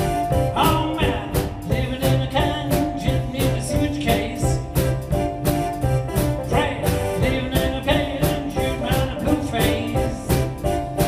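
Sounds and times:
drum kit with cymbals: 0.0 - 11.0
lead melody line: 0.0 - 11.0.

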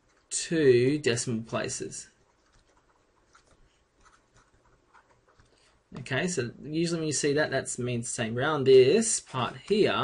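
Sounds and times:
stylus scratching on tablet screen: 0.0 - 0.4, 1.4 - 5.9.

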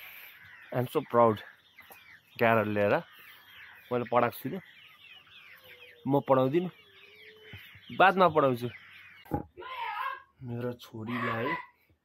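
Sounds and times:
faint high bird calls: 0.0 - 12.0.

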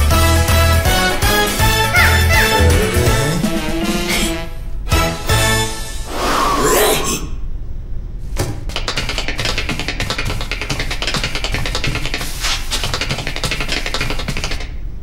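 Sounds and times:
upbeat dance music: 1.9 - 3.7.

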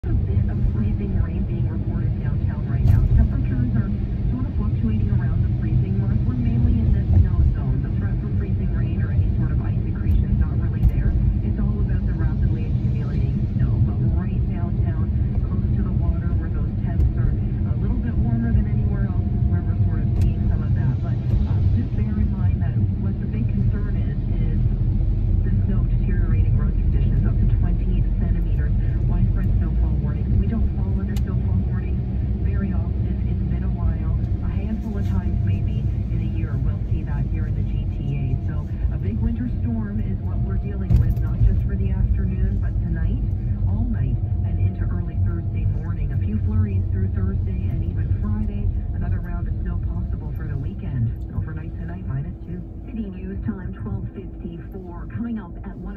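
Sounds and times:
car engine rumble: 0.0 - 55.9
quiet talking: 25.3 - 55.9.

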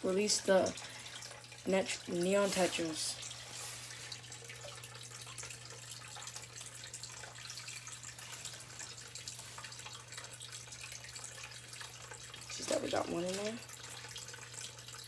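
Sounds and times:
low steady hum: 0.0 - 15.0
water splashing and trickling: 0.0 - 15.0.

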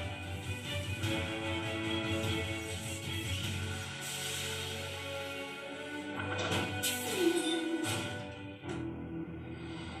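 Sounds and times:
dramatic cartoon music from tv: 0.0 - 10.0.

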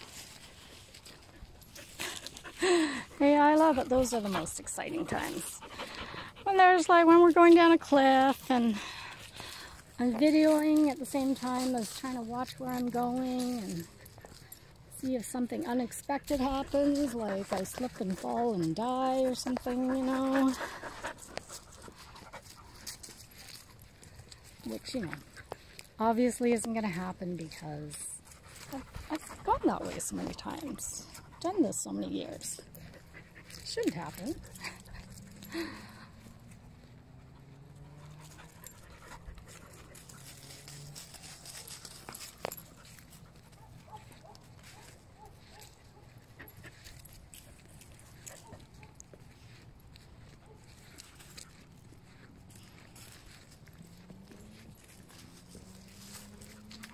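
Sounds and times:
footsteps crunching on dry leaves: 0.0 - 2.9, 16.2 - 26.0, 38.0 - 56.9
dog panting: 0.0 - 7.8, 12.7 - 26.0, 28.1 - 56.9.

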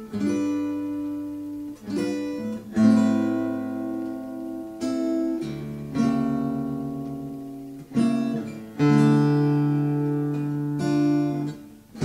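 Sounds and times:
acoustic guitar fingerstyle melody: 0.0 - 12.0.

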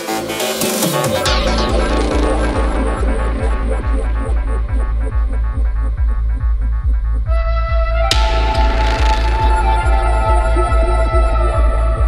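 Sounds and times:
rolling bassline: 0.0 - 12.0
held synth note: 1.2 - 5.4
kick drum: 1.3 - 12.0.

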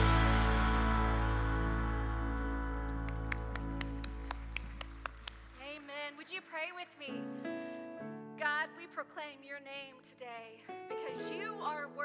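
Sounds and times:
band chord ringing out: 0.0 - 3.8
hand clapping: 2.7 - 6.4.

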